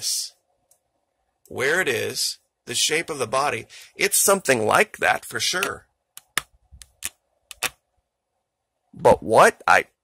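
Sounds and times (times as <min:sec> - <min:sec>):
faint steady hum: 0:00.0 - 0:10.0
computer mouse clicking: 0:05.6 - 0:07.8.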